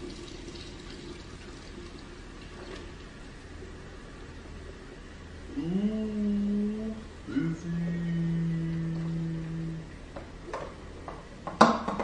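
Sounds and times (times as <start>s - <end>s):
soda pouring into a jug: 0.0s - 3.4s
person humming a held note: 5.5s - 9.9s.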